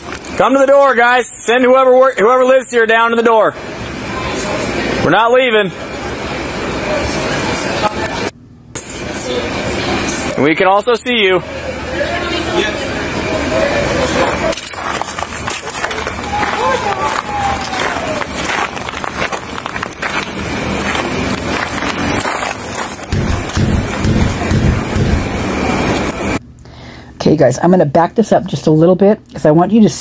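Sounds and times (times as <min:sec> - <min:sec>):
distant voices: 0:00.0 - 0:26.4
outdoor background noise: 0:00.0 - 0:30.0
low thumps of movement: 0:18.4 - 0:26.4.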